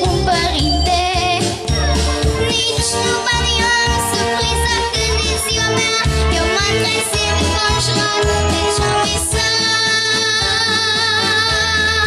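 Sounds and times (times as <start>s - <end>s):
girl singing with vibrato: 0.0s - 12.0s
instrumental accompaniment: 0.0s - 12.0s.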